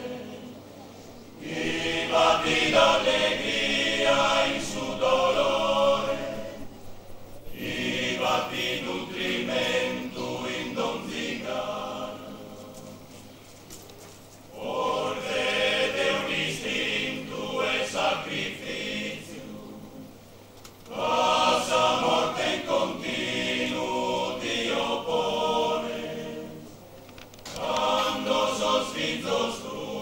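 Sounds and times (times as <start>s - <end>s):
male choir singing unaccompanied: 0.0s - 0.7s, 1.4s - 6.8s, 7.4s - 13.3s, 14.5s - 20.3s, 20.9s - 26.8s, 27.5s - 30.0s.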